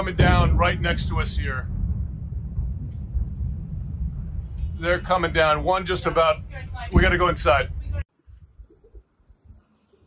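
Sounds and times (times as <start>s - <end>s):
man speaking: 0.0s - 1.6s, 4.8s - 7.8s
steady low rumble: 0.0s - 9.6s.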